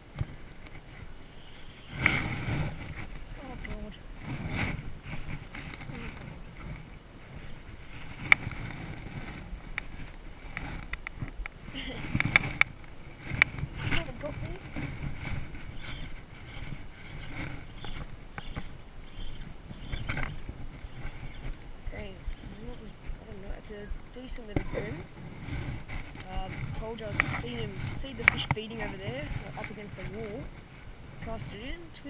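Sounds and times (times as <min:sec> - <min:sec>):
jacket fabric rustling on microphone: 0:00.0 - 0:32.0.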